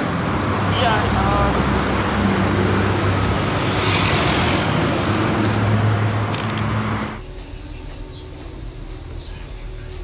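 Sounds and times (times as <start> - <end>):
street traffic engine hum: 0.0 - 10.0.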